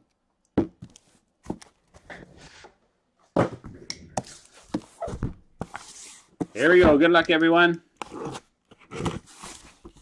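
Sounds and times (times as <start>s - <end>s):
cardboard scraping and rustling: 8.0s - 10.0s.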